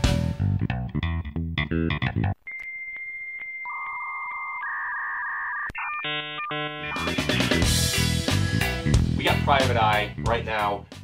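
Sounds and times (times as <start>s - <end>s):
bass guitar music: 0.0s - 2.4s, 6.0s - 11.0s
music: 0.0s - 2.4s, 6.3s - 11.0s
dial-up modem handshake: 2.4s - 7.5s.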